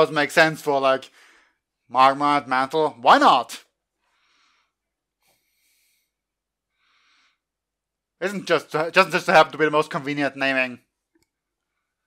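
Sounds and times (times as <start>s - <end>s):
faint breaths through nose: 1.1s - 1.6s, 4.0s - 7.5s.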